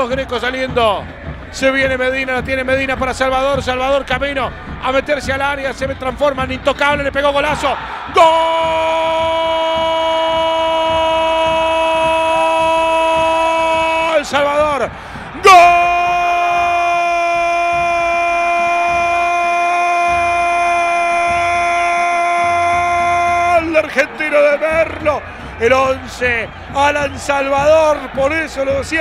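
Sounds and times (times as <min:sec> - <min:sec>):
commentator shouting goal: 0:00.0 - 0:29.0.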